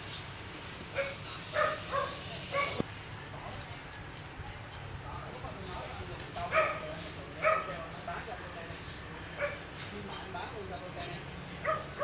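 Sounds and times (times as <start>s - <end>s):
dog barking: 1.0s - 2.8s, 6.5s - 7.8s, 9.4s - 9.6s, 11.6s - 12.0s.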